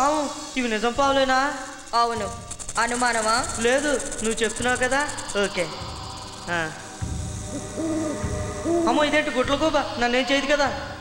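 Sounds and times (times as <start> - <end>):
owl hooting: 0.0 - 10.4
low rumble: 5.7 - 10.2.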